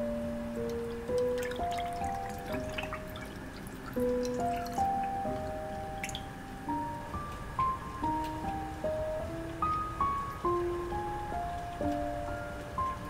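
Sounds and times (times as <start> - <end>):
slow background music: 0.0 - 13.0
juice pouring over ice: 0.7 - 5.2.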